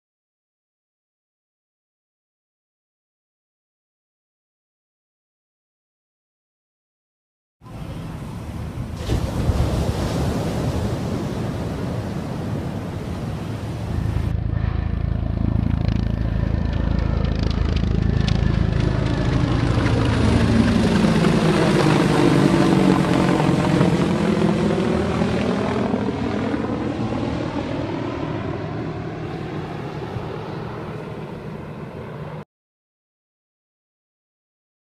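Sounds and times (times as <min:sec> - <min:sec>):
helicopter passing overhead: 0:07.6 - 0:32.4.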